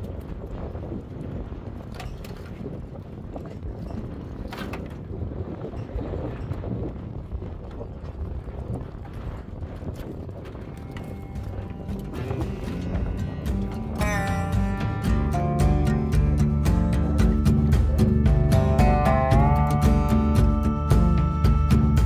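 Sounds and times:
steady low rumble: 6.5s - 22.0s
music: 10.8s - 22.0s.

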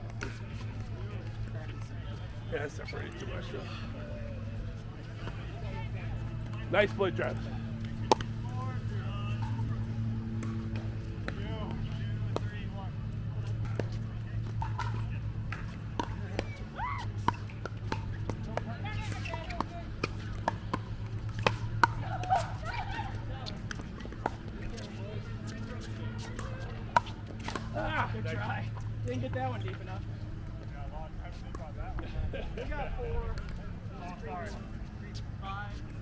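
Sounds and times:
faint voices: 0.0s - 36.0s
steady low hum: 0.0s - 36.0s.

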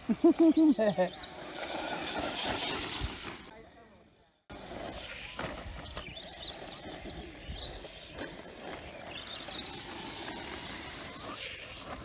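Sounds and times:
electric motor whine: 0.2s - 12.0s.

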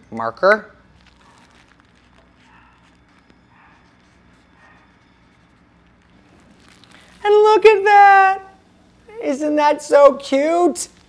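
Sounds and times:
paper rustling: 0.9s - 7.2s.

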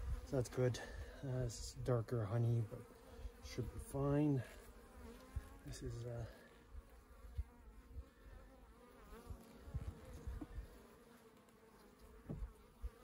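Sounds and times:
honeybee colony buzzing: 0.0s - 13.0s.

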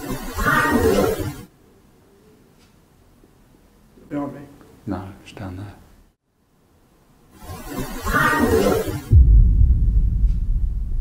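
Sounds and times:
sudden deep rumble: 9.1s - 11.0s.

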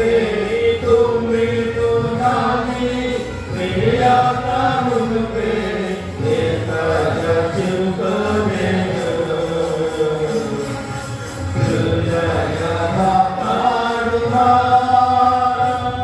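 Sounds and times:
singers holding long notes: 0.0s - 16.0s.

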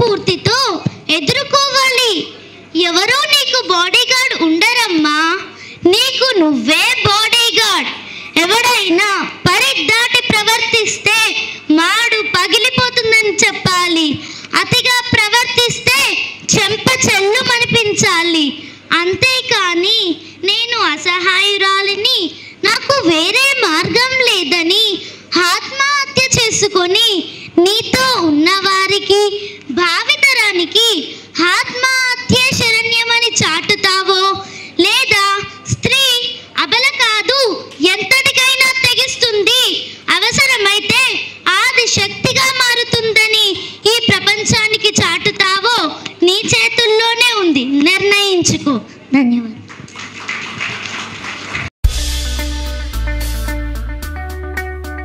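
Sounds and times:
audience applauding: 49.7s - 51.7s
upbeat music with guitar and drums: 51.8s - 55.0s.

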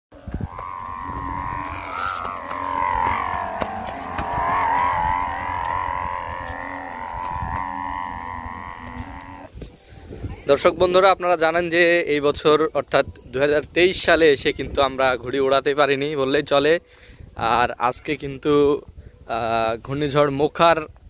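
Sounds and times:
kite hummer droning: 0.1s - 9.8s
low rumble: 0.2s - 9.5s.

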